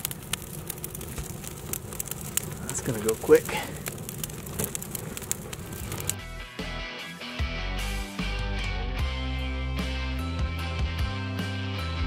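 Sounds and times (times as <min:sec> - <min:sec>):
fire crackling: 0:00.0 - 0:10.8
music with steady bass: 0:06.2 - 0:12.0.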